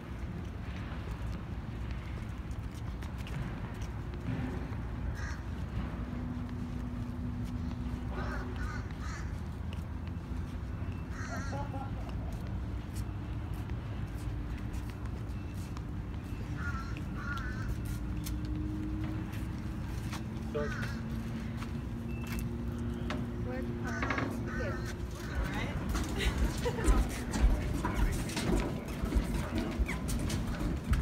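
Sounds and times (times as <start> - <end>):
steady low rumble: 0.0 - 15.1
people talking: 23.4 - 29.8.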